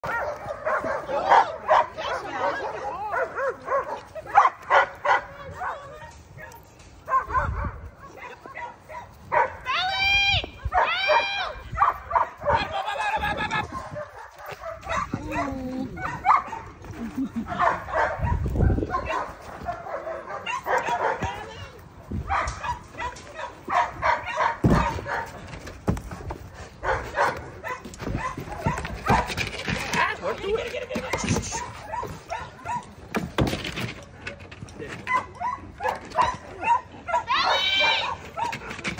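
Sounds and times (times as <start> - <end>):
dog barking: 0.0 - 9.6, 10.7 - 12.7, 13.7 - 16.8, 17.5 - 21.5, 22.2 - 25.4, 26.2 - 29.4, 30.2 - 33.0, 35.1 - 38.7.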